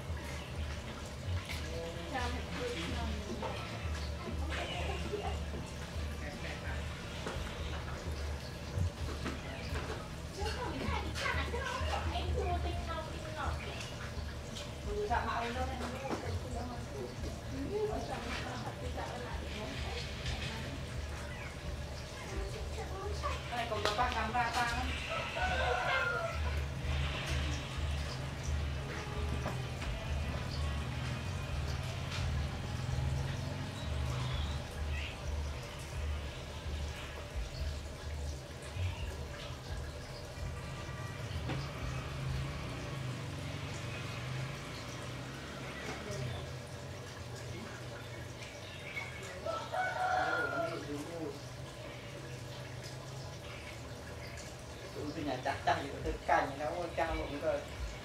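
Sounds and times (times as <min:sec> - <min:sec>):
aquarium air stone bubbling: 0:00.0 - 0:58.0.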